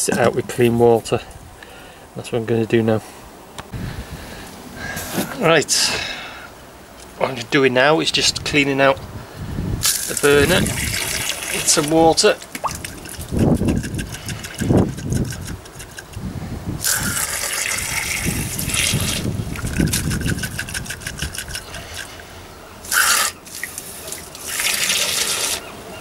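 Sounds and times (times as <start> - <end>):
water spraying and splashing on metal: 9.8 - 14.8, 22.8 - 25.6.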